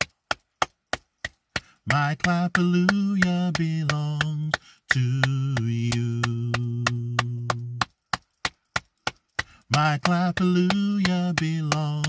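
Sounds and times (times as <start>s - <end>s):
hand claps keeping a beat: 0.0s - 12.0s
person singing: 1.8s - 7.9s, 9.6s - 12.0s.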